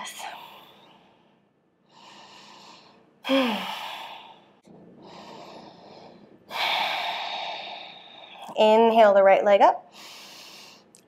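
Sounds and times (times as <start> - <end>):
woman breathing: 0.0 - 8.6, 9.9 - 11.0
woman sighing: 3.2 - 4.2.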